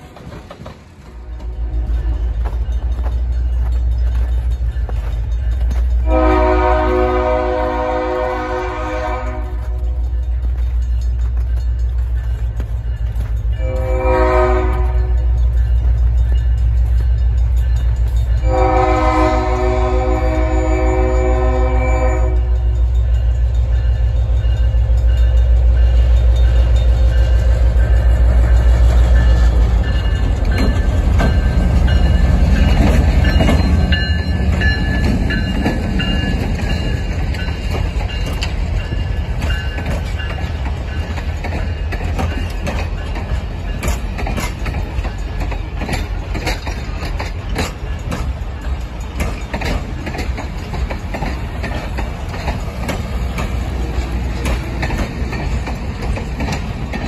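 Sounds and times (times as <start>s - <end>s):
locomotive engine rumble: 0.0s - 57.0s
train wheels clicking on rail joints: 0.0s - 57.0s
locomotive air horn: 6.0s - 9.9s, 13.6s - 15.2s, 18.4s - 22.6s.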